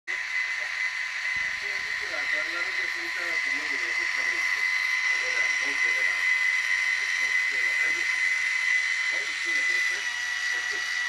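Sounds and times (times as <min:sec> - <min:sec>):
small electric motor whirring: 0:00.1 - 0:11.0.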